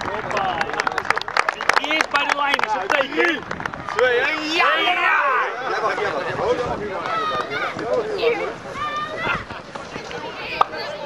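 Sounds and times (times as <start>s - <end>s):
voices chattering and calling out: 0.0s - 11.0s
children's voices: 6.8s - 11.0s.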